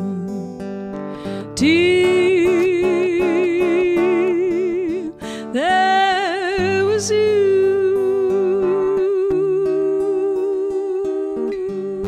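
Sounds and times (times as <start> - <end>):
woman humming long note: 0.0 - 0.6
acoustic guitar picking: 0.0 - 12.0.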